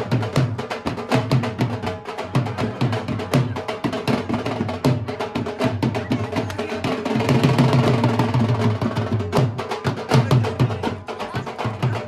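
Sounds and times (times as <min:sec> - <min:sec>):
drum roll: 0:00.0 - 0:12.0.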